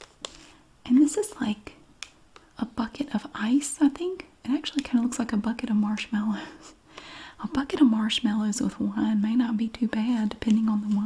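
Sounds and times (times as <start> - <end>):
faint plastic packaging clicks: 0.0 - 0.5.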